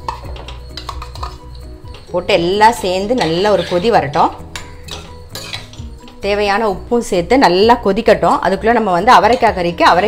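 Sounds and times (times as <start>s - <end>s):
metal spoon scraping a pot: 0.0s - 6.3s, 9.2s - 9.8s.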